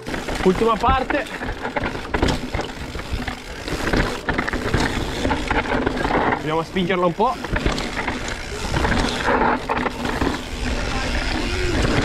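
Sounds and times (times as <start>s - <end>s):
bike knocking and rattling: 0.0s - 12.0s
bike tyres rolling over stones: 0.0s - 12.0s.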